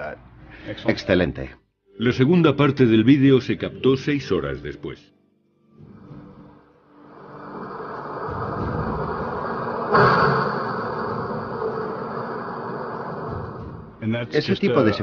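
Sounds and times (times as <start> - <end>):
sustained drone: 6.8 - 15.0
rumbling swell: 6.9 - 14.6
sudden dramatic hit: 7.7 - 14.2.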